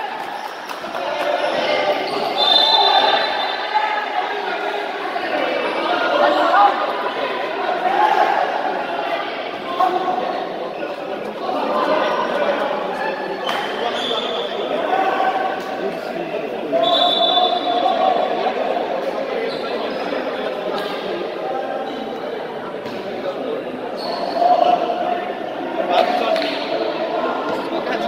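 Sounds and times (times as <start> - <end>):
chatter of voices in hall: 0.0 - 28.0.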